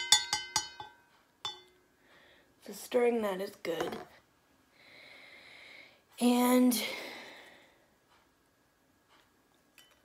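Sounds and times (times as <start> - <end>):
spoon clinking in metal tumbler: 0.0 - 1.7.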